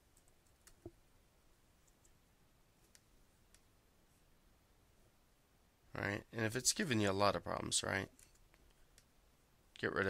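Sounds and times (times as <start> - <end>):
keyboard clicks: 0.1 - 0.9.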